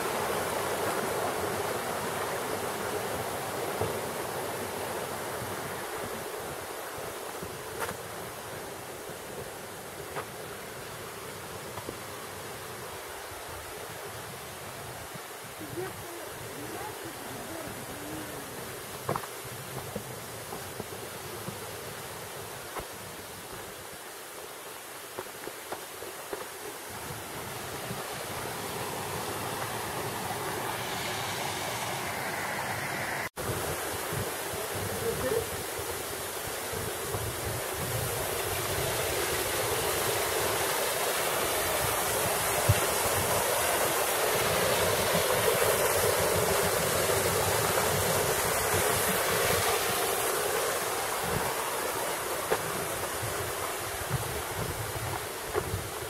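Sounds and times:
stream rushing over rocks: 0.0s - 56.0s
footsteps on dirt trail: 7.1s - 10.6s, 17.5s - 30.4s, 44.8s - 56.0s.

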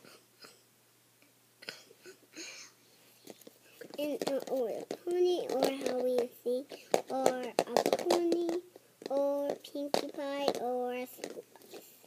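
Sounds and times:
plastic toy egg clicks: 3.8s - 11.9s
girl singing wordless tune: 4.0s - 11.2s.

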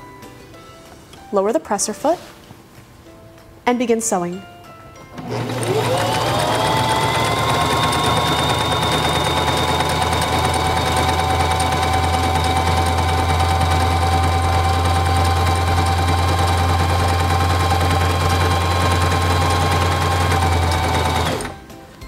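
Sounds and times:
electric sewing machine running: 5.2s - 21.6s.

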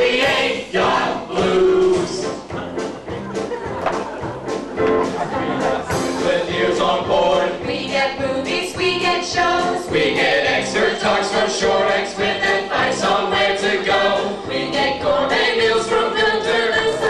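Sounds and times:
men and women singing in chorus: 0.0s - 2.4s, 5.7s - 17.0s.

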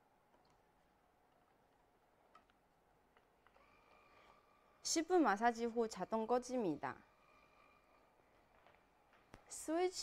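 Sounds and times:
faint steady motor whine: 0.0s - 10.0s.

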